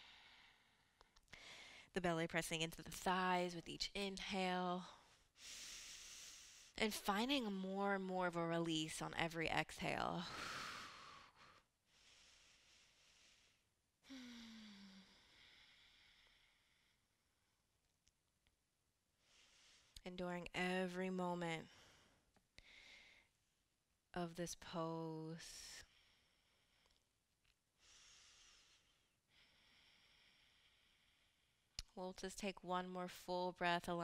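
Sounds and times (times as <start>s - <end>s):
faint breathing: 0.0s - 1.9s, 4.9s - 6.8s, 10.2s - 17.2s, 19.2s - 20.0s, 21.7s - 23.3s, 27.8s - 31.7s
woman breathing out: 10.3s - 17.0s.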